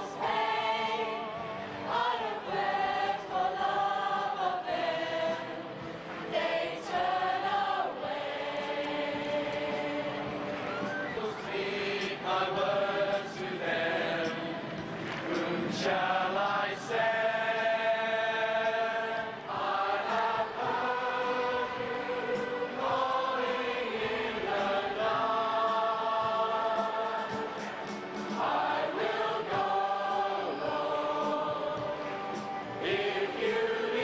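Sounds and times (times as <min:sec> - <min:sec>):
group singing chant-like song: 0:00.0 - 0:34.0.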